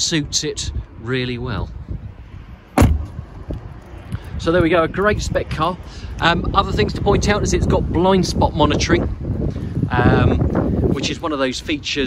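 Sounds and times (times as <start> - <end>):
car door thud: 2.7 - 3.7.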